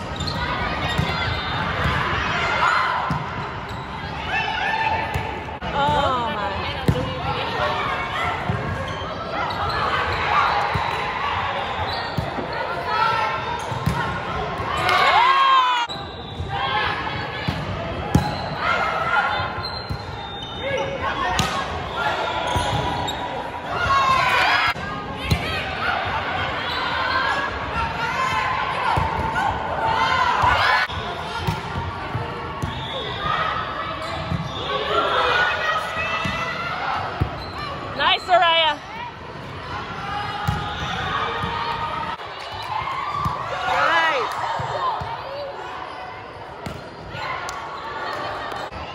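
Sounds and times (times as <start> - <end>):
players calling and shouting: 0.0 - 48.9
spectators' voices: 0.0 - 48.9.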